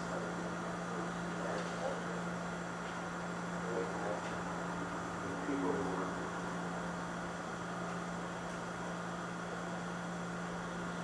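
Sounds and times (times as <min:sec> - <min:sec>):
room noise hum and hiss: 0:00.0 - 0:11.0.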